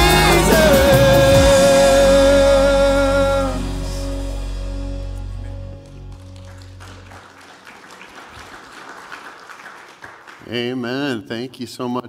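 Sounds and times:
band sustained chord: 0.0 - 7.2
congregation applauding: 5.4 - 10.8.

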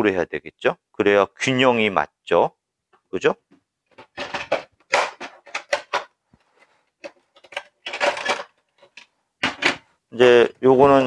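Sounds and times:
plastic parts clicking and knocking: 3.5 - 6.2, 7.0 - 9.9.

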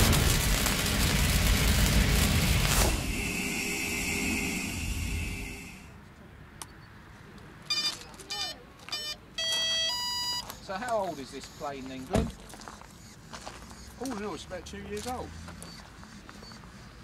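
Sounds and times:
deep boom and whoosh: 0.0 - 5.9
shimmering hissing swell: 0.0 - 6.0
short electronic beeps: 7.7 - 10.4.

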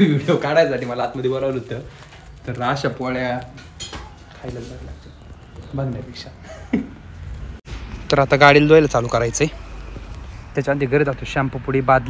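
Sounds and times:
metal kitchen utensils clinking: 3.6 - 4.2.

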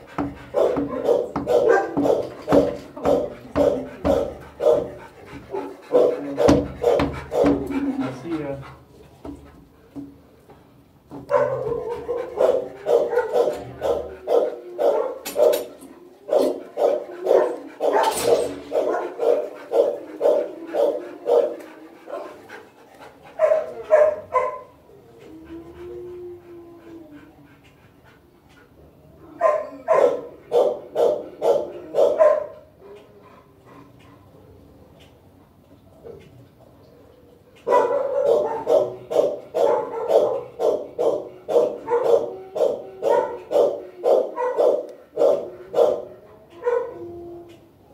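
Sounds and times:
dog barking: 0.5 - 7.8, 11.3 - 15.7, 16.3 - 22.3, 23.4 - 24.8, 29.4 - 32.6, 37.7 - 47.0.

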